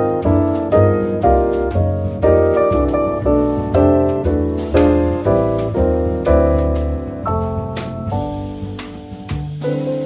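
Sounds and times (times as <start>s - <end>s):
double bass line: 0.0s - 10.0s
piano chords: 0.0s - 10.0s.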